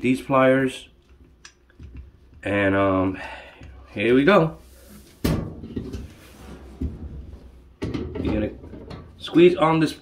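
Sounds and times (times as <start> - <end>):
soft bumps and scraping: 4.0 - 9.2
thump: 5.2 - 5.9.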